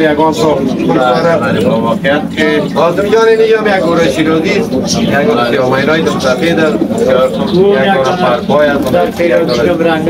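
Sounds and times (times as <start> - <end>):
men talking: 0.0 - 10.0
pigeons cooing: 0.0 - 10.0.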